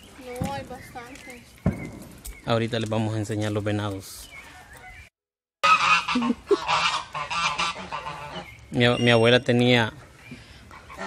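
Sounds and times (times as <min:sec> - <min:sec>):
geese honking: 0:05.6 - 0:11.0.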